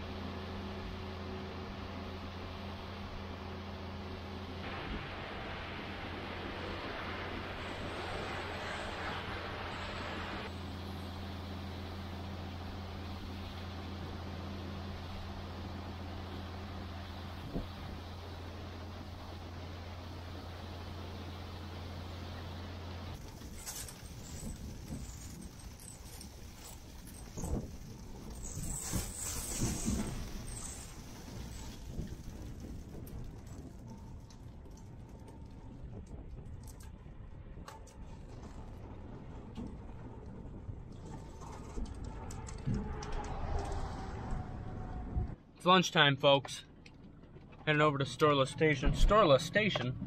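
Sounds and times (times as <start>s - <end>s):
low machine hum: 0.0s - 45.5s
road noise: 0.0s - 50.0s
trailer knocks and rattles: 23.2s - 45.4s, 46.4s - 50.0s.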